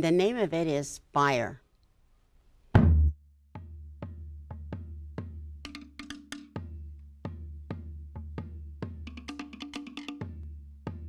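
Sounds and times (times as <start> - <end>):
deep drum beats: 2.8 - 11.0
wooden slit-drum strikes: 2.8 - 11.0.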